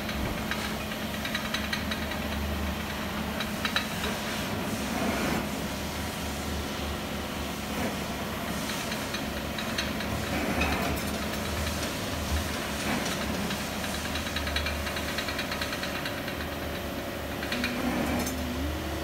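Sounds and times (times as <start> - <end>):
gas torch flame burning: 0.6 - 19.0.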